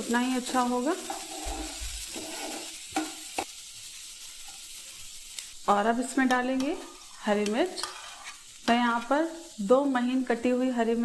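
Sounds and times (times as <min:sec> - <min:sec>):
onion sizzling in a pan: 0:00.0 - 0:11.0
wooden spatula scraping: 0:00.4 - 0:03.4, 0:07.7 - 0:09.2.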